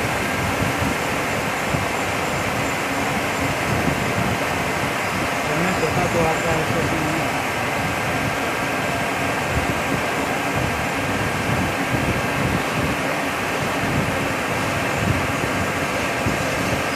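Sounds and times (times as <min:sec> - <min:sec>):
faint steady whine: 0:00.0 - 0:16.9
splashing coolant: 0:00.0 - 0:16.9.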